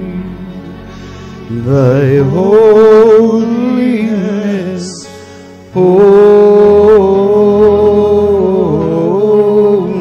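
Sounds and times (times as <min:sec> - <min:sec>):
person singing slow liturgical melody: 0:00.0 - 0:10.0.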